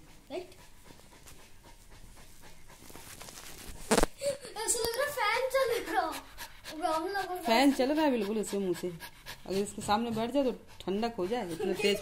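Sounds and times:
dog panting: 0.0 - 3.8, 5.2 - 12.0.

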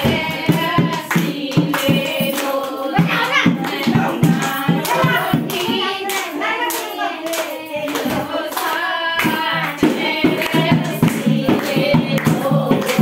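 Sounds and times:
people clapping in rhythm: 0.0 - 13.0
people singing: 0.0 - 13.0.

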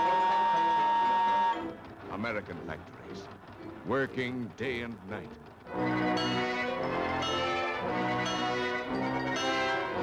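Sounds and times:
steam whistle blowing: 0.0 - 1.8
orchestral music: 0.0 - 4.6, 5.2 - 10.0.

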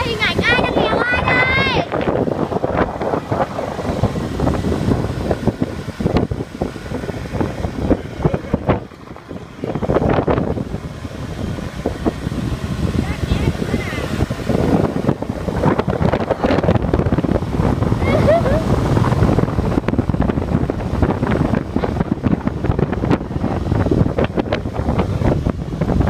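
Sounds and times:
road and engine noise: 0.0 - 26.0
wind buffeting microphone: 0.0 - 26.0.

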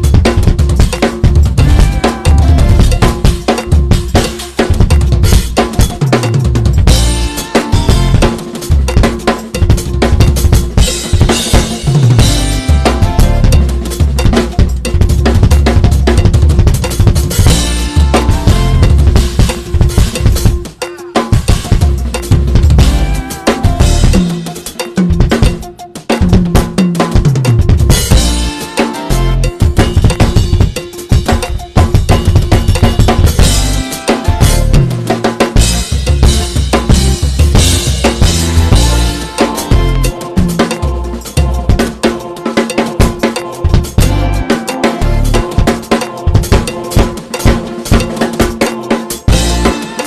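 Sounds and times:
backing track bass line: 0.0 - 20.7, 21.3 - 25.7, 27.2 - 42.0, 43.7 - 46.7, 49.3 - 50.0
acoustic drum kit groove: 0.0 - 50.0.

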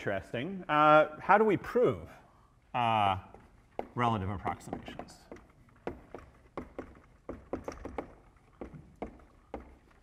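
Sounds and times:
chalk tapping and scratching on board: 3.8 - 10.0.

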